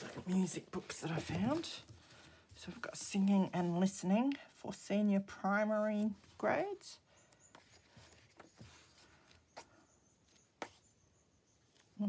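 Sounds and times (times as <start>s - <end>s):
pages rustling: 0.0s - 4.4s, 7.5s - 10.8s.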